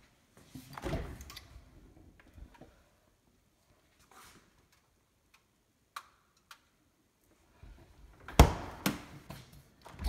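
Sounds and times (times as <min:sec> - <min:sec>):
soft rustle: 0:03.6 - 0:04.8.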